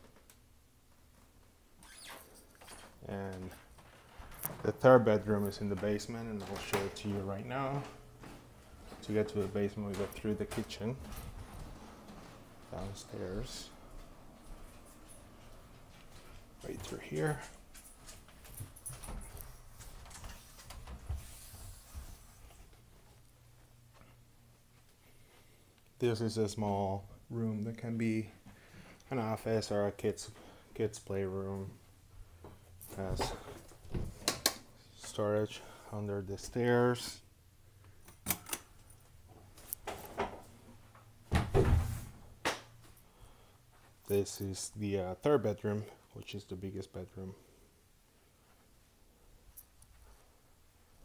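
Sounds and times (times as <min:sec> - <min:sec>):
footsteps on carpeted stairs: 0:03.6 - 0:13.0, 0:13.8 - 0:25.0.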